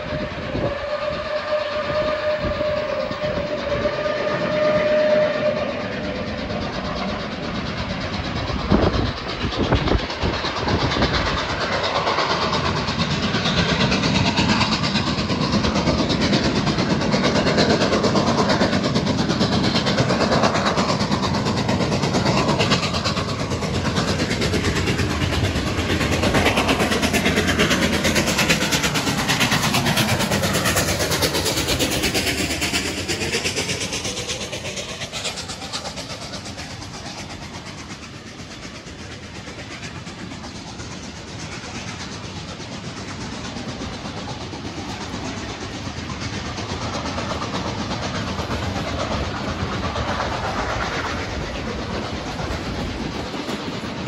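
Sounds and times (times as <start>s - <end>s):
steam locomotive whistle: 0.0s - 7.4s
train rumbling on rails: 0.0s - 54.0s.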